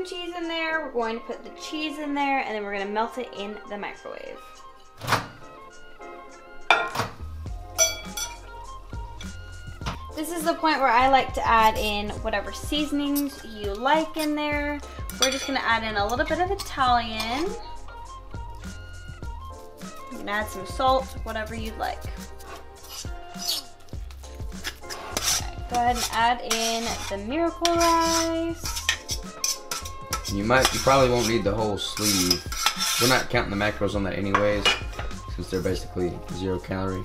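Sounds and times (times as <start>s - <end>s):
background music: 0.0s - 37.0s
ceramic bowl clinking: 6.7s - 7.1s, 7.8s - 8.5s, 15.1s - 16.3s, 34.3s - 35.1s
fork scraping a ceramic bowl: 15.1s - 15.6s, 22.3s - 23.8s, 24.6s - 33.3s.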